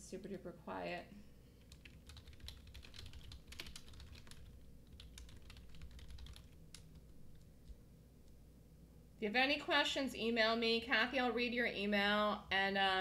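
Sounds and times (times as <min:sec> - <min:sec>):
typing on a computer keyboard: 0:01.6 - 0:07.8.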